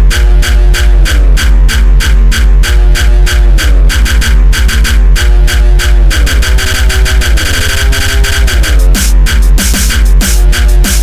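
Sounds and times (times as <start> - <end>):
distorted kick drum beat: 0.0 - 11.0.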